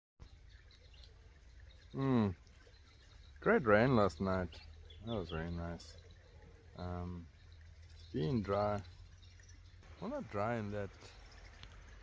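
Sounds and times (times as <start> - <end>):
distant bird chirps: 0.2 - 12.0.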